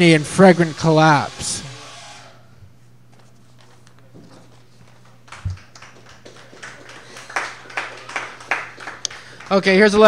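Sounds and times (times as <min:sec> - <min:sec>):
sparse applause: 0:05.2 - 0:10.0.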